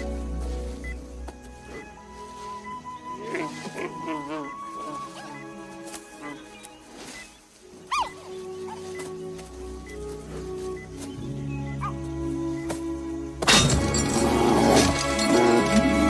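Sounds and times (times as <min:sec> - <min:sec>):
film score music: 0:00.0 - 0:16.0
giant panda wavering call: 0:03.2 - 0:06.5.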